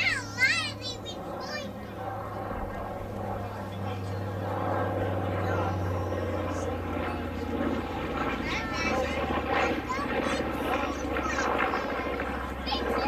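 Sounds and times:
aircraft engines droning: 0.0s - 13.0s
people talking: 0.0s - 13.0s.

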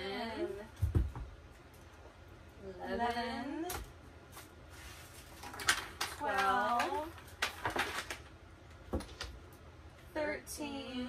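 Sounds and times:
woman's wordless voice: 6.2s - 7.2s, 10.1s - 11.0s.

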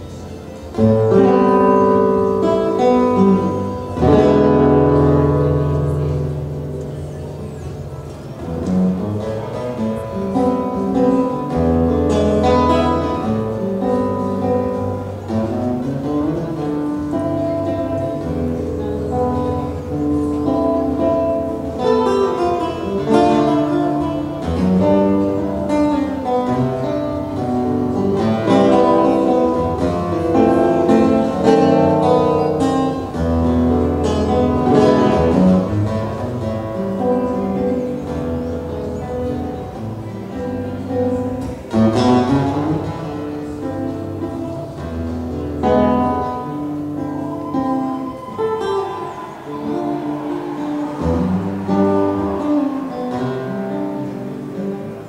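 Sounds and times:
classical guitar fingerpicking: 0.0s - 55.0s.

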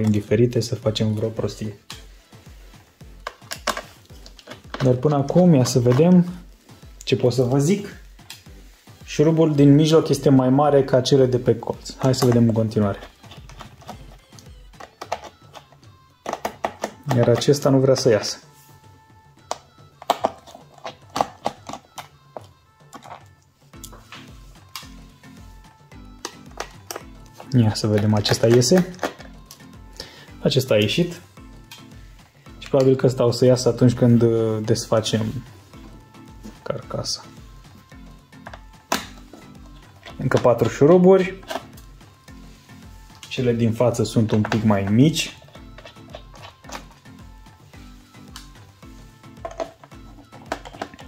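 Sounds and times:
background music with bass line: 0.0s - 51.0s.

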